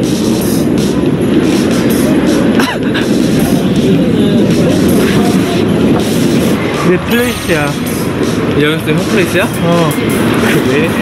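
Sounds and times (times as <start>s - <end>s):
train rumbling through station: 0.0s - 11.0s.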